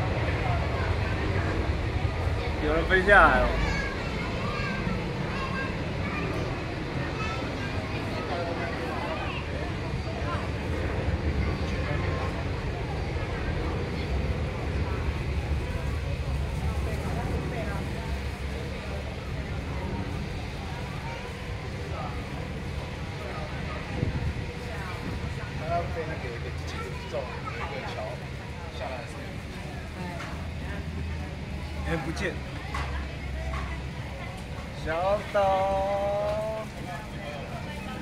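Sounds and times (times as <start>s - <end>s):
steady low rumble: 0.0s - 27.4s
background chatter of people: 0.0s - 38.0s.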